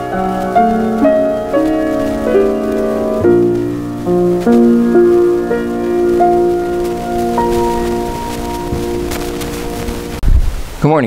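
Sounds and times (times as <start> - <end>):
grand piano chord ringing: 0.0 - 10.2.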